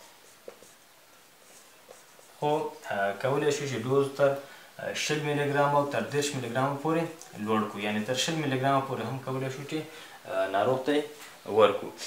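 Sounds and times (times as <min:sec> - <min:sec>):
marker writing on whiteboard: 0:00.0 - 0:02.9.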